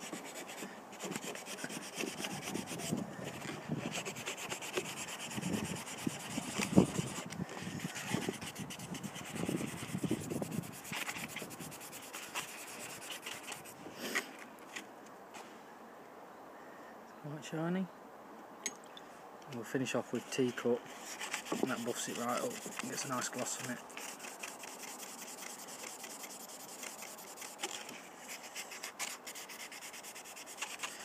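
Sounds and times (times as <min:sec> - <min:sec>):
handle rubbed on abrasive paper: 0:00.0 - 0:14.2, 0:20.9 - 0:31.0.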